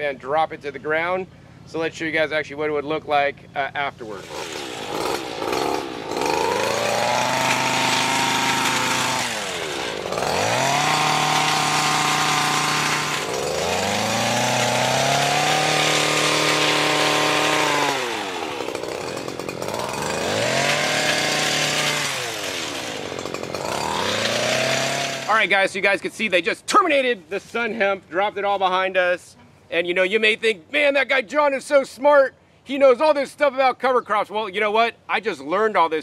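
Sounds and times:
brush cutter engine revving: 4.0 - 25.6.

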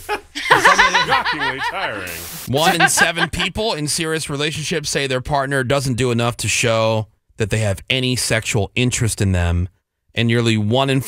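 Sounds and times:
person laughing: 0.0 - 3.6.

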